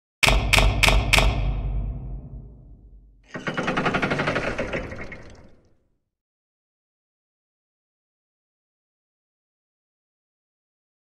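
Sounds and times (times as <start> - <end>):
heavy hits: 0.2 - 5.3
deep boom: 0.3 - 3.2.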